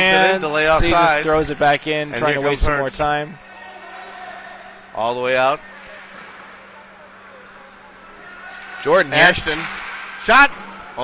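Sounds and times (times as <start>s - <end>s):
ice hockey game ambience: 0.0s - 11.0s.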